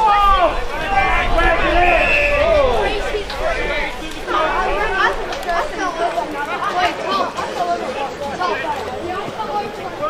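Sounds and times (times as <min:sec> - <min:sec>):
people calling out: 0:00.0 - 0:10.0.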